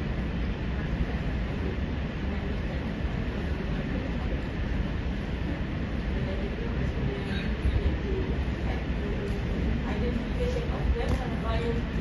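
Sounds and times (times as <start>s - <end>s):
low room noise rumble: 0.0s - 12.0s.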